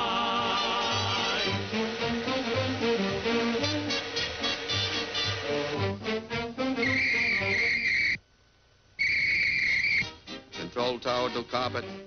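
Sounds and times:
whistle blasts: 6.8 - 8.2, 9.0 - 10.2.

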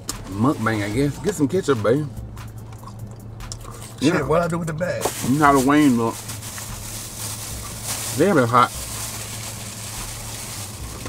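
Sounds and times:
car idling hum: 0.0 - 11.0.

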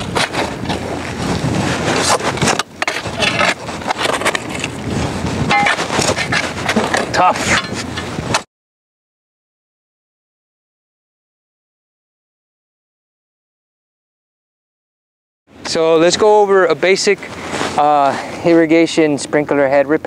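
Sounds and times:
shovel digging in gravelly soil: 1.6 - 4.8, 5.4 - 7.9.

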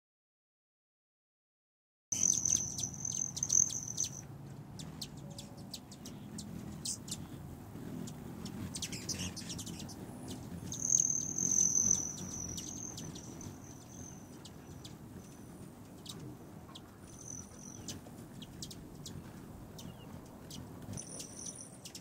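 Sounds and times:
hummingbird chip calls: 2.2 - 22.0
low hum: 2.2 - 22.0.

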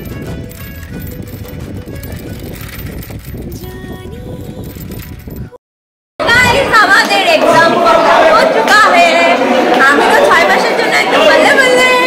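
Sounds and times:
many young people chattering: 6.2 - 12.0.

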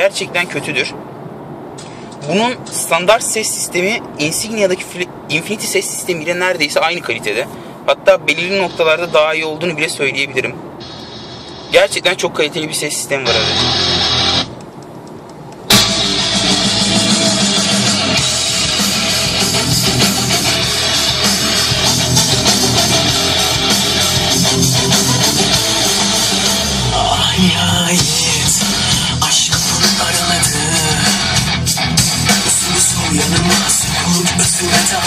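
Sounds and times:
rock music over car speakers: 13.3 - 14.6, 15.7 - 35.0.

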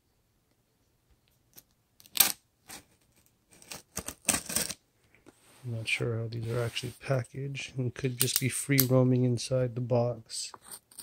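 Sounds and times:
knife cutting packing tape: 3.6 - 4.8.

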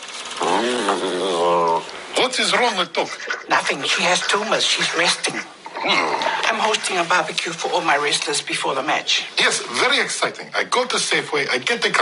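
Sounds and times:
dog groaning: 0.4 - 1.9, 3.0 - 6.5.

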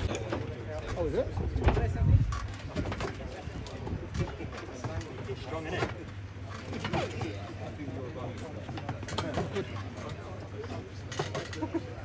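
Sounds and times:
people talking quietly: 0.0 - 12.0.

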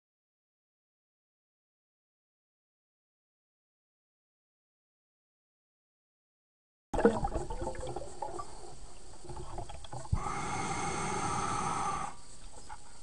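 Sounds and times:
breath hissing through regulator: 10.0 - 13.0.

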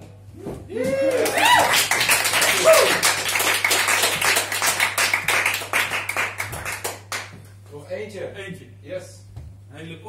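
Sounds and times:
vocal whoop: 0.4 - 3.1
audience applauding: 1.1 - 7.4.

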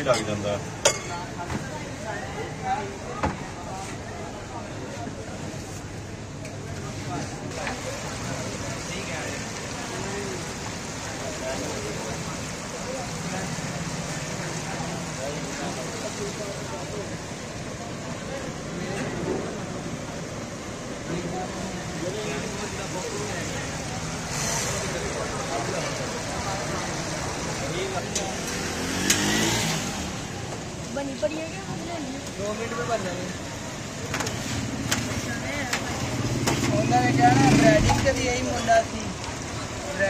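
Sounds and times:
road traffic noise: 0.0 - 40.0.

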